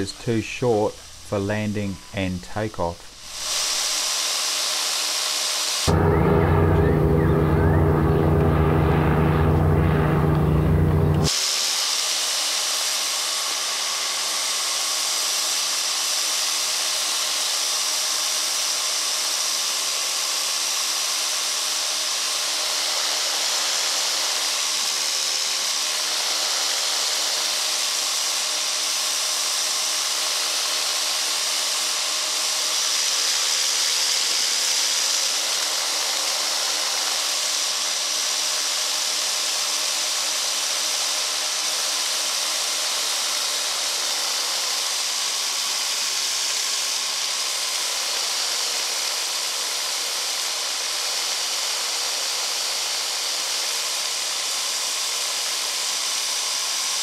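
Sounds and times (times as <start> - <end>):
faint engine drone: 5.9 - 11.3.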